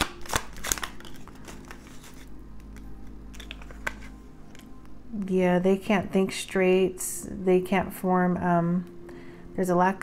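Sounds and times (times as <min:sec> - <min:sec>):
cards clicking and tapping: 0:00.0 - 0:04.7.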